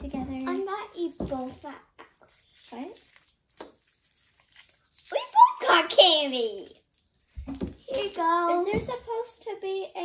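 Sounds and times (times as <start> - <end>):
plastic eggs clicking and rustling: 0.0 - 9.0.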